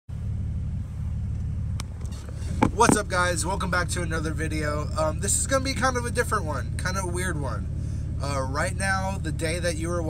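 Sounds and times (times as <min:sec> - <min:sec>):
road noise: 0:00.1 - 0:10.0
vehicle engine rumble: 0:00.1 - 0:10.0.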